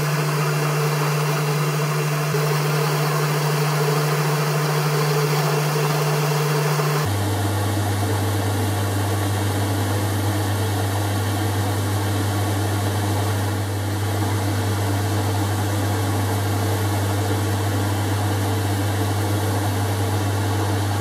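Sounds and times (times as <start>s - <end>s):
lathe motor and gear hum: 0.0s - 10.1s.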